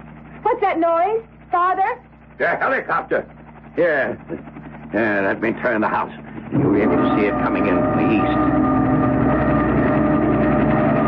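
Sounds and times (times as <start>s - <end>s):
helicopter engine and rotor drone: 0.0s - 11.0s.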